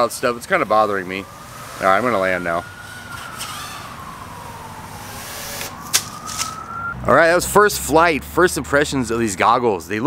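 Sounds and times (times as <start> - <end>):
quadcopter motors whining: 0.3 - 7.0.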